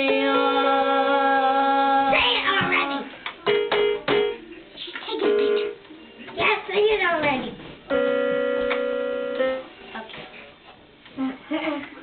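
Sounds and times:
toy keyboard electronic note: 0:05.2 - 0:05.8, 0:07.9 - 0:09.7.

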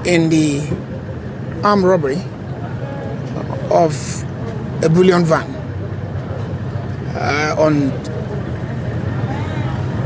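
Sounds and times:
faint voices: 0:00.0 - 0:10.0
outdoor background noise: 0:00.0 - 0:10.0
vehicle engine idling: 0:00.0 - 0:10.0.

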